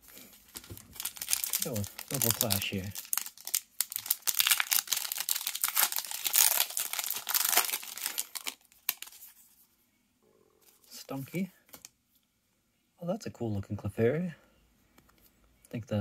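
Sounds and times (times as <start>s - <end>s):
foil wrapper tearing and crinkling: 0.5s - 9.2s.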